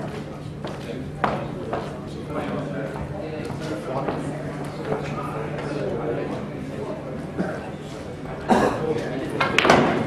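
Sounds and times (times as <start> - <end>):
faint background talk: 0.0 - 10.0
person coughing: 8.5 - 8.9.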